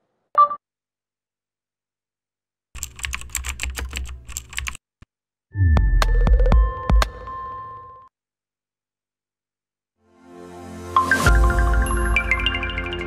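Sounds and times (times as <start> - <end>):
rapid typing-like clicks: 2.8 - 4.8.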